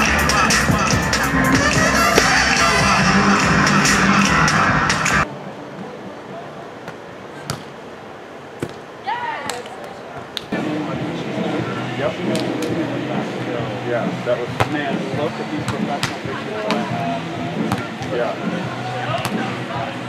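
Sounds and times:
loud dense background noise: 0:00.0 - 0:20.0
player shouting: 0:01.6 - 0:04.5.

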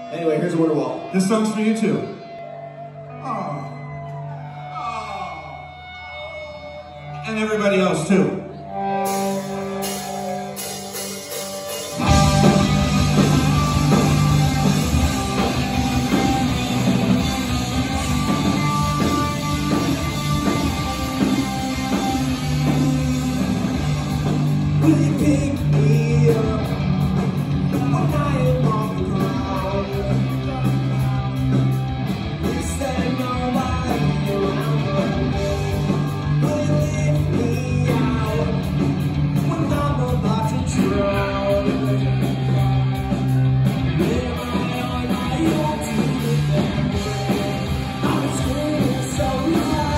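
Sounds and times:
bass guitar: 0:00.0 - 0:49.9
distorted electric guitars: 0:00.0 - 0:49.9
driving drum kit: 0:09.1 - 0:49.9
person singing: 0:24.8 - 0:27.1, 0:27.7 - 0:31.5, 0:32.4 - 0:38.8, 0:39.4 - 0:42.8, 0:43.9 - 0:49.9.

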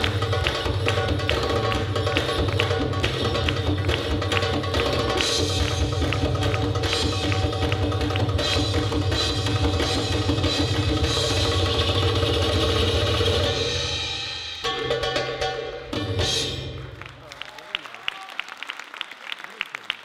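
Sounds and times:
audience applause: 0:00.0 - 0:08.6, 0:16.8 - 0:20.0
darbuka drum solo: 0:00.0 - 0:17.0.

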